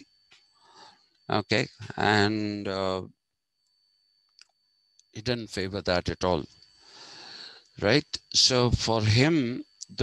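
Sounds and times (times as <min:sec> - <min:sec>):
faint steady high tone: 0:00.0 - 0:10.0.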